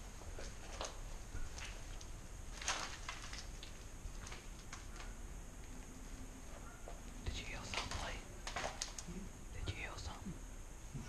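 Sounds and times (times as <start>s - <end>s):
person whispering: 7.2s - 8.2s, 9.1s - 10.4s.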